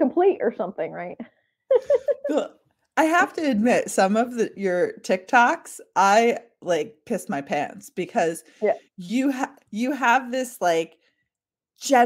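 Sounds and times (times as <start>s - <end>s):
woman laughing vocal sounds: 1.7s - 2.5s
woman speaking: 1.7s - 2.5s.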